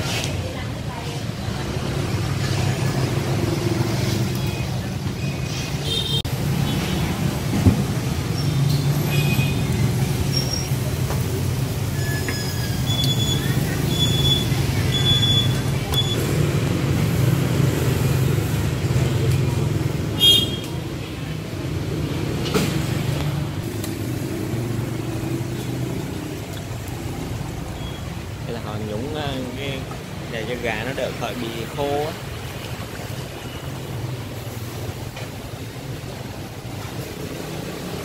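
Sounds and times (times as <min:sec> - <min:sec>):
street traffic rumble: 0:00.0 - 0:38.0.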